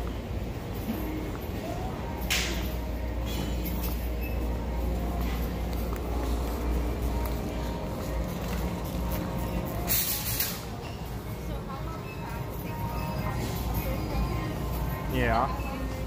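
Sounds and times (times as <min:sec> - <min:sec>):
background music: 0:00.0 - 0:16.0
steady low hum: 0:00.0 - 0:16.0.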